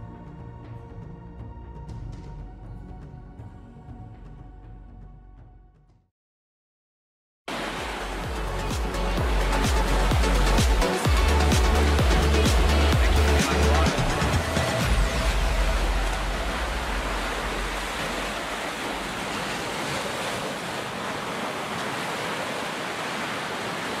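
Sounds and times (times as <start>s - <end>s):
ocean surf breaking: 7.5s - 24.0s
music with heavy bass beat: 8.2s - 16.8s.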